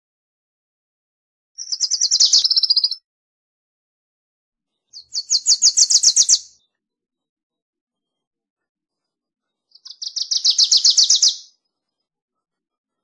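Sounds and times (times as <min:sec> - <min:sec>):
bird chipping song: 0:01.6 - 0:03.0, 0:04.8 - 0:06.7, 0:09.7 - 0:11.6.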